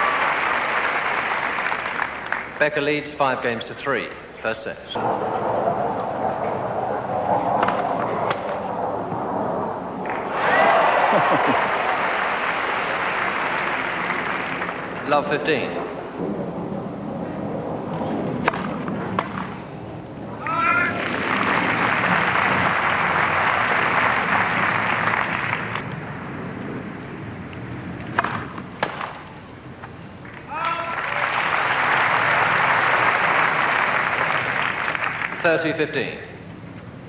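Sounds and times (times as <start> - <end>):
crowd applause: 0.0 - 2.6, 10.0 - 15.6, 20.4 - 26.2, 30.4 - 35.9
person shouting: 20.4 - 21.0, 30.5 - 31.0.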